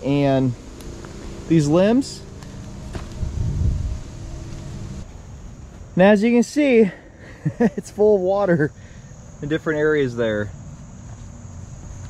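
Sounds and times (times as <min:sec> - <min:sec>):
wind buffeting microphone: 0:02.6 - 0:05.0.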